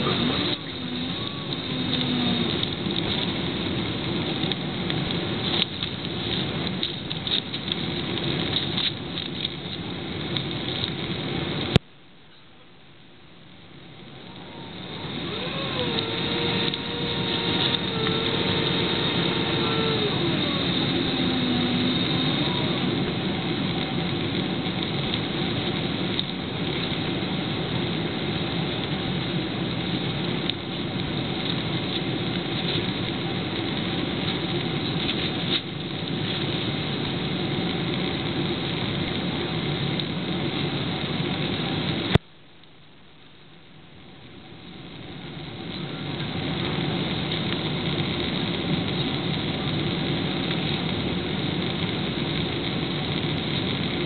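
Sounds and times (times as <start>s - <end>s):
jet engines and airflow rushing: 0.0s - 11.8s, 13.1s - 42.2s
whine: 0.0s - 54.0s.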